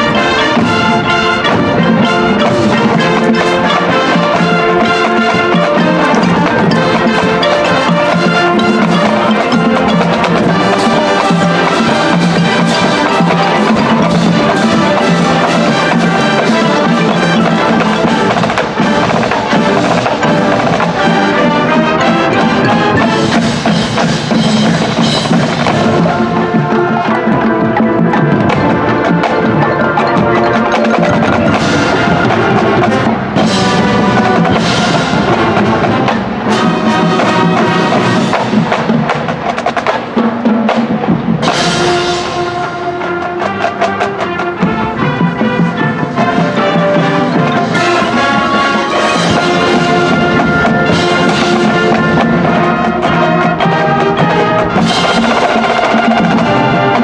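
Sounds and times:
loud percussion accents: 0.0 - 57.0
marching band playing: 0.0 - 57.0.

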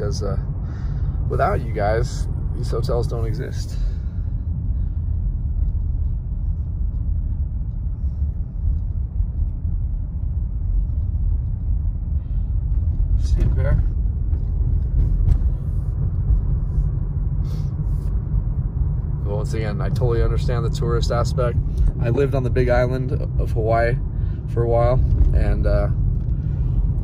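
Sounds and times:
car engine rumble: 0.0 - 27.0.

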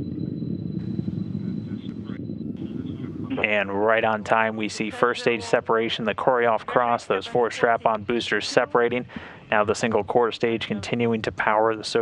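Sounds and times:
rocket engines rumbling: 0.0 - 12.0.

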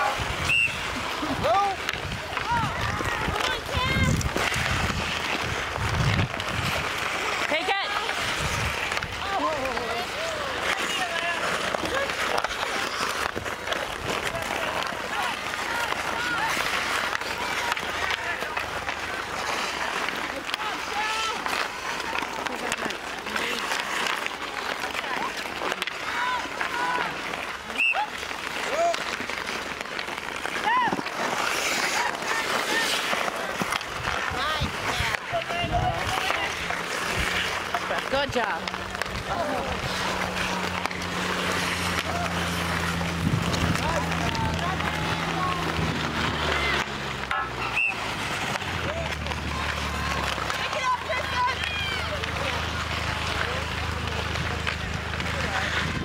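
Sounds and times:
hockey sticks clacking puck: 0.0 - 56.0
skate blades scraping ice: 0.0 - 56.0
people calling: 6.4 - 55.8.

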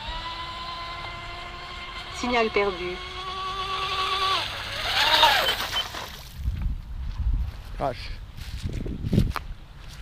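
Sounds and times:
boat motor whining: 0.0 - 6.4
short high beeps: 5.3 - 6.0.

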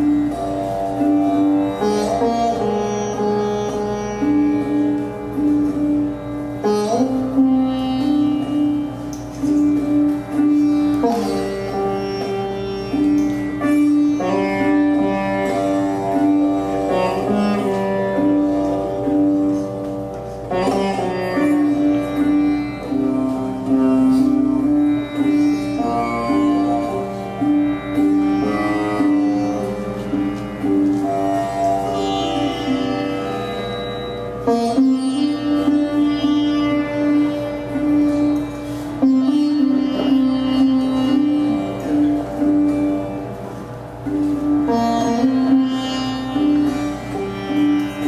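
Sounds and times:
sitar playing: 0.0 - 48.0.

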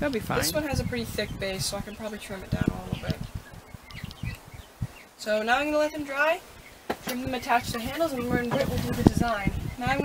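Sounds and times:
low bumps: 0.0 - 10.0
faint bird chirps: 0.7 - 10.0.

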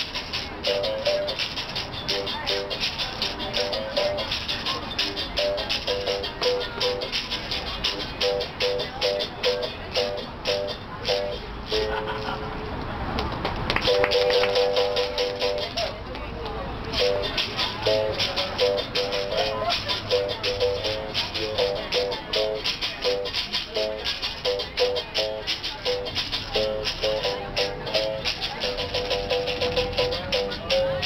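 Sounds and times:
caxixi rattle shaking: 0.0 - 11.5, 13.8 - 15.9, 17.0 - 31.0.

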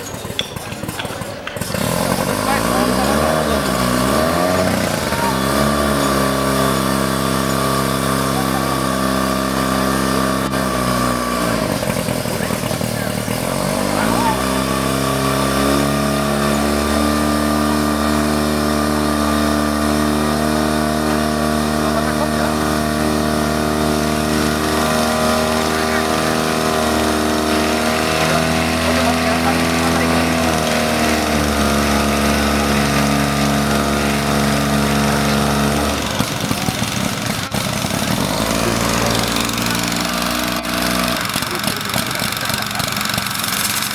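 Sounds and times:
fire pump engine running at high revs: 0.0 - 43.9.

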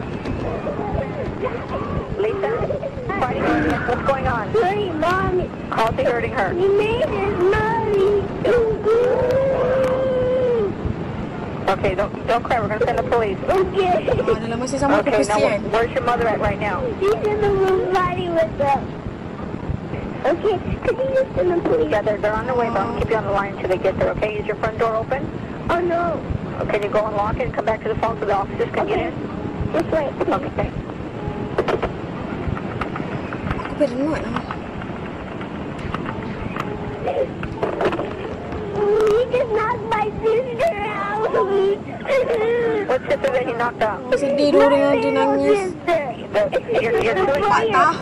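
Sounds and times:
phone line hiss: 0.0 - 48.0
low rumble: 15.0 - 41.8
girl crying wail: 40.6 - 43.0.

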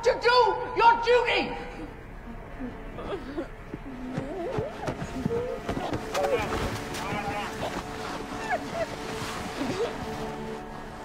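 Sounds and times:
quiet film score music: 0.0 - 11.0.

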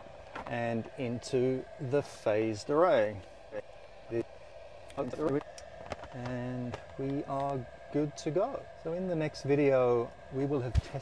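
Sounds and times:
cooling fan hum: 0.0 - 11.0
man talking: 0.5 - 4.3, 4.9 - 5.4, 6.1 - 11.0.

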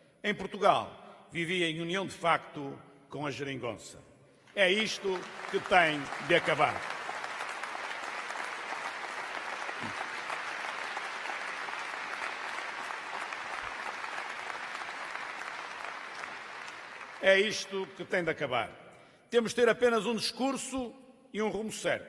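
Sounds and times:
audience applauding: 4.6 - 18.0.

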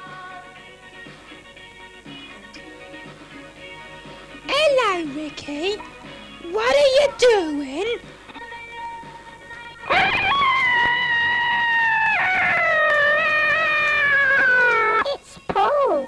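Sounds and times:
high voice screaming: 9.9 - 15.2.

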